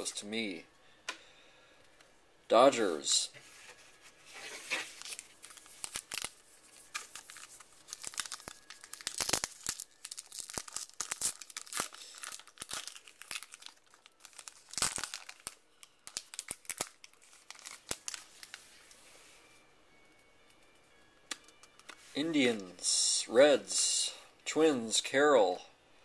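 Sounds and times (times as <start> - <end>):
wrapper tearing and crinkling: 4.3 - 18.9.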